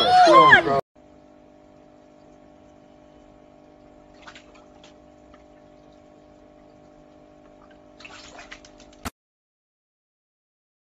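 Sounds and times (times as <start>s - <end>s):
steady low hum: 1.0s - 8.8s
water splashing in fish tank: 1.0s - 9.1s.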